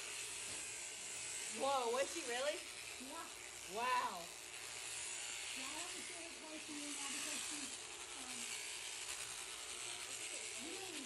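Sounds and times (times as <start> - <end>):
electric sheep shears buzzing: 0.0 - 11.0.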